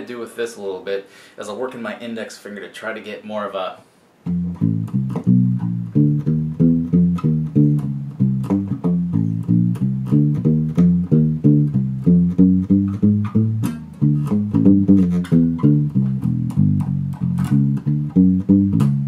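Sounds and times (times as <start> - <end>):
electric bass walking line: 4.3 - 19.0.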